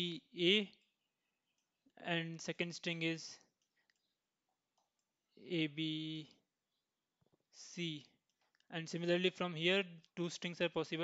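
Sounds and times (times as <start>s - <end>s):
man speaking: 0.0s - 0.8s, 2.0s - 3.5s, 5.4s - 6.4s, 7.5s - 11.0s.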